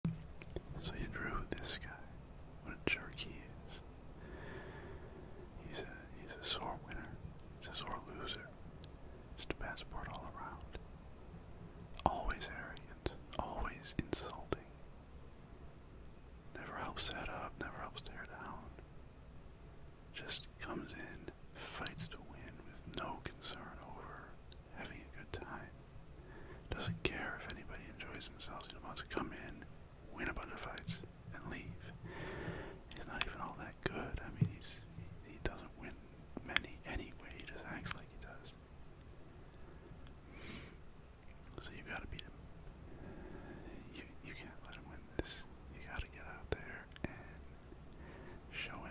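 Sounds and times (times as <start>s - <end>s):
man whispering: 0.6s - 3.9s, 5.4s - 8.6s, 9.4s - 10.8s, 12.0s - 14.8s, 16.5s - 18.8s, 20.1s - 25.8s, 26.6s - 32.2s, 32.8s - 38.6s, 41.4s - 42.4s, 43.0s - 48.9s.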